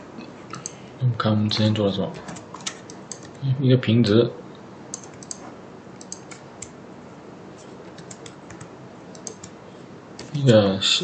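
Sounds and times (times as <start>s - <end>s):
keyboard keys clicking: 4.9s - 5.4s, 6.0s - 6.7s, 7.9s - 9.6s.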